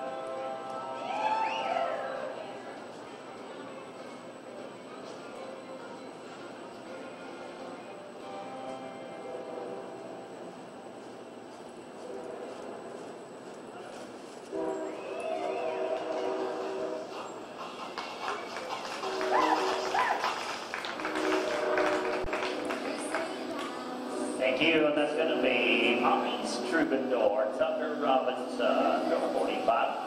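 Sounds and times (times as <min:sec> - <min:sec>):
murmur of voices: 0:00.0 - 0:10.2, 0:13.6 - 0:30.0.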